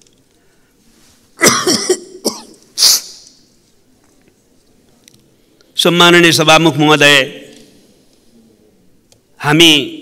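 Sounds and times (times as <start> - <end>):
man coughing: 1.4 - 3.0.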